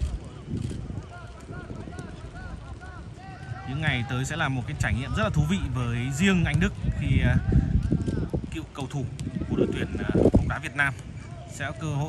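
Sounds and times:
low outdoor rumble: 0.0 - 11.8.

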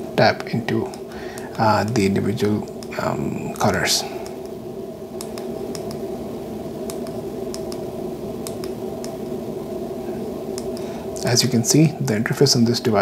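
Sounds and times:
steady low hum: 0.0 - 13.0
faint small clicks: 5.2 - 6.0, 6.9 - 7.8, 8.4 - 9.2, 10.6 - 10.9.

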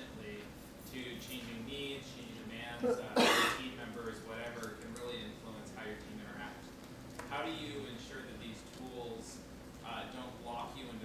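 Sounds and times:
person coughing: 2.8 - 3.6.

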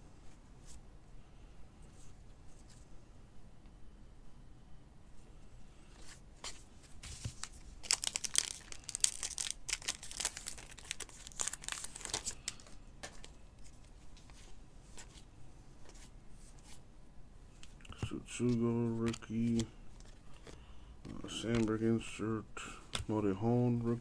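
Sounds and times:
cardboard cards rustling and clicking: 6.0 - 16.8, 17.6 - 22.2.

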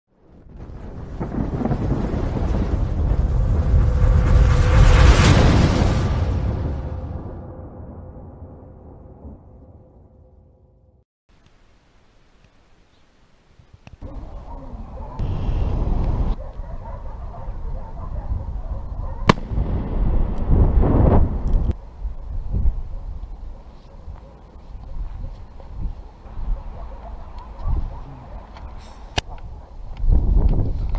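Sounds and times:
wind buffeting microphone: 0.2 - 7.0, 14.0 - 30.9
deep thunder-like rumble: 0.2 - 10.5, 19.3 - 21.8.

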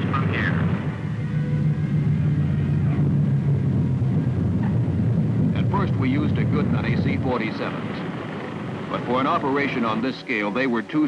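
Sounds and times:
propeller aircraft droning: 0.0 - 11.0.

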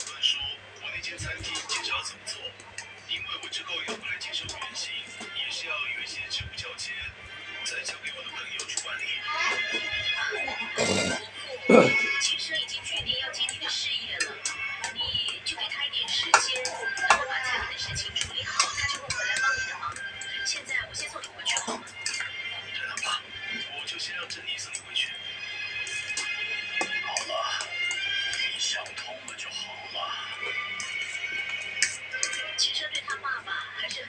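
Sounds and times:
speech: 0.0 - 25.2, 27.0 - 27.7, 28.3 - 30.6, 32.0 - 34.0
background music: 0.0 - 34.0.

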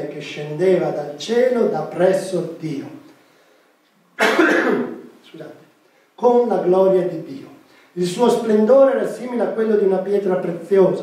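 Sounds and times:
man coughing: 4.2 - 5.0.

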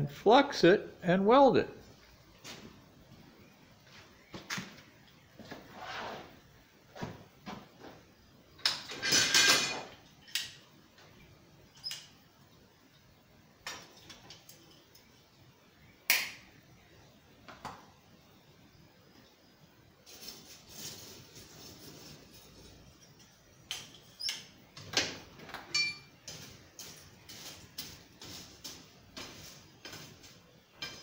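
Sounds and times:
metal tools knocking and clinking: 8.6 - 10.6.

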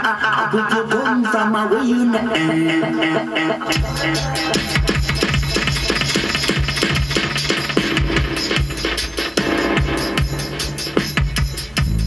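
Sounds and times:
instrumental reggae music: 0.0 - 12.0.

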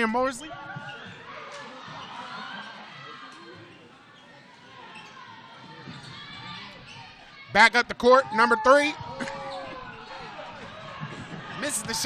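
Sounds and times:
crowd voices chattering: 0.0 - 12.0.

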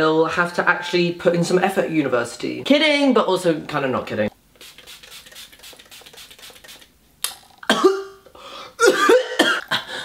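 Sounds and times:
pump spray bottle misting: 4.5 - 7.0
person coughing: 7.6 - 8.2, 8.8 - 10.0.

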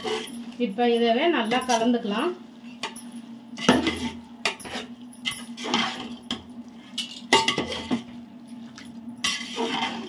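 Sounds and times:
metal ladle scraping a pot: 0.0 - 0.4, 3.6 - 6.2, 9.2 - 10.0.

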